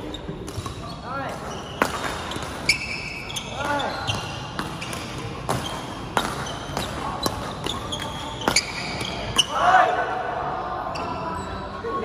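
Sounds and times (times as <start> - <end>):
shoes squeaking on court floor: 0.0 - 9.6, 10.9 - 11.6
racket hitting shuttlecock: 0.4 - 9.6.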